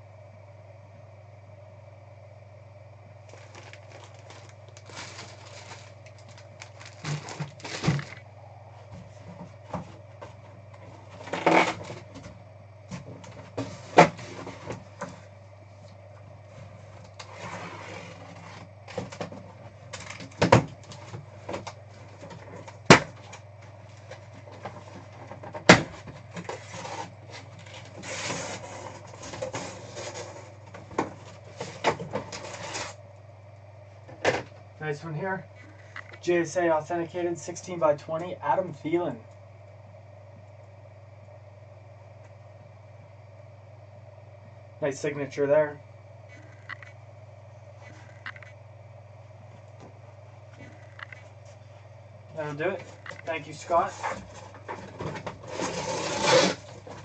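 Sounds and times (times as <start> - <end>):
steady low hum: 0.0 - 57.0
items shifted in cardboard box: 3.3 - 8.2
plastic bag crinkling: 3.3 - 8.2.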